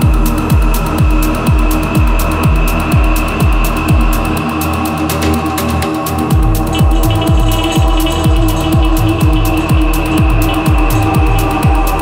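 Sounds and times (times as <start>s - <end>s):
held synth chord: 0.0s - 12.0s
kick drum: 0.0s - 12.0s
ticking hi-hats: 0.0s - 12.0s.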